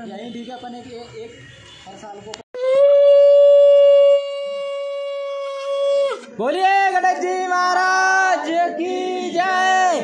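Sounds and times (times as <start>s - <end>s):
conch shell blown: 2.6s - 6.2s.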